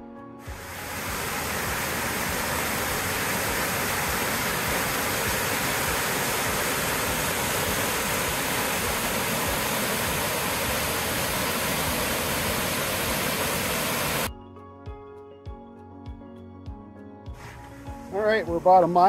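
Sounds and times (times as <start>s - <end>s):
waterfall rushing: 0.5s - 14.3s.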